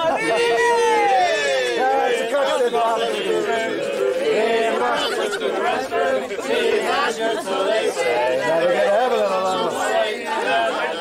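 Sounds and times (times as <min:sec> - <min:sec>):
group of people talking: 0:00.0 - 0:11.0.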